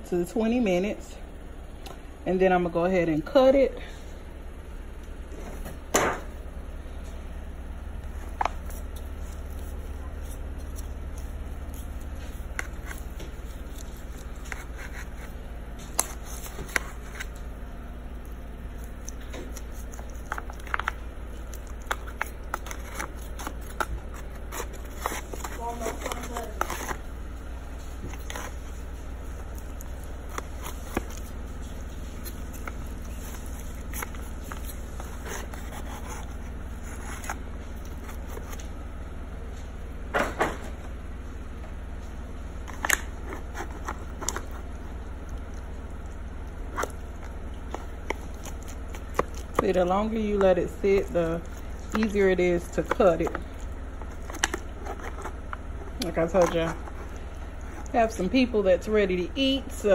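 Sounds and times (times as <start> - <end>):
steady low hum: 0.0 - 59.9
spatula scraping foil pan: 21.9 - 27.0.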